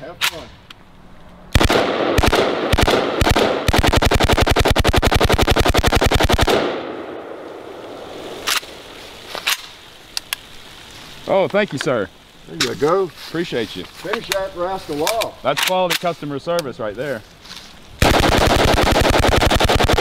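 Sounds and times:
rifle shots: 0:01.5 - 0:07.4, 0:18.0 - 0:20.0
automatic gunfire burst: 0:01.6 - 0:06.8, 0:18.0 - 0:20.0.

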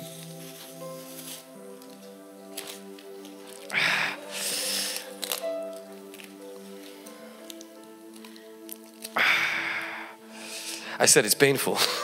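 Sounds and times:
soft keyboard chords: 0:00.0 - 0:11.8.

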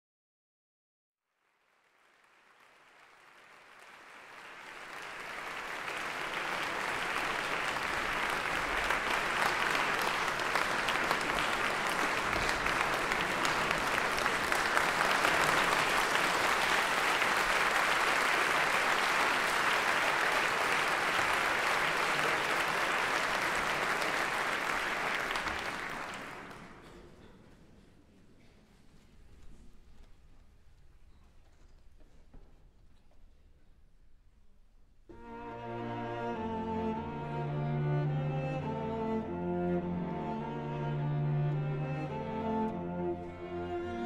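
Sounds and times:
audience applauding: 0:01.3 - 0:27.0.

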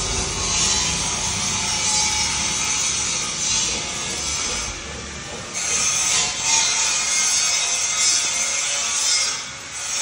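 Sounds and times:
rhythmic rasping scraping strokes: 0:00.0 - 0:10.0.

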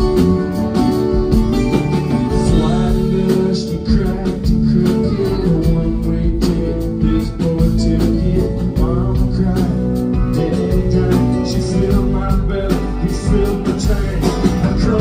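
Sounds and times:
bass: 0:00.0 - 0:15.0
steady drum beat: 0:00.0 - 0:15.0
strummed acoustic guitar: 0:00.0 - 0:15.0
man singing: 0:02.1 - 0:15.0.

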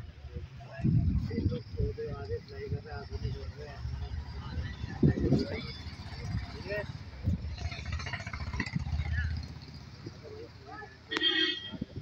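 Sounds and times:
engine running: 0:05.0 - 0:11.1.

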